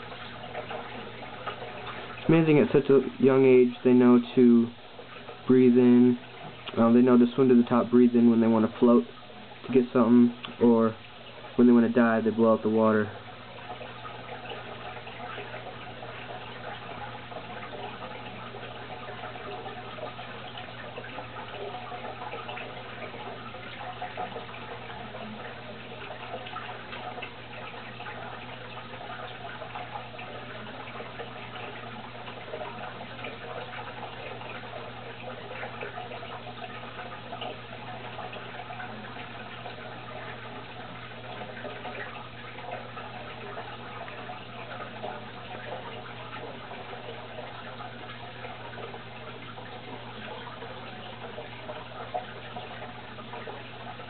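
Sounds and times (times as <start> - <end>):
aquarium pump hum: 0.0 - 54.0
aquarium water bubbling: 0.0 - 54.0
little water splashes: 0.0 - 54.0.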